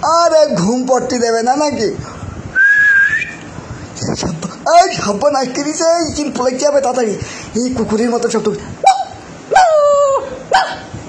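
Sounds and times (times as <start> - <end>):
dog calling: 8.8 - 10.9.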